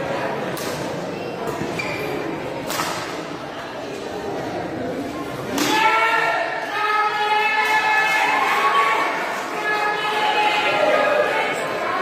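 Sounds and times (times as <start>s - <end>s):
shoes squeaking on court floor: 1.4s - 2.3s.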